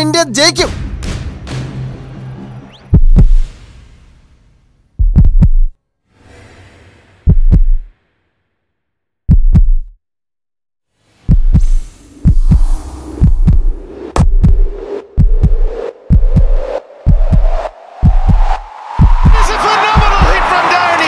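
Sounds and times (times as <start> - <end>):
heartbeat-style thuds: 2.9 - 3.5, 5.0 - 5.8, 7.3 - 7.9, 9.3 - 10.0, 11.2 - 20.4.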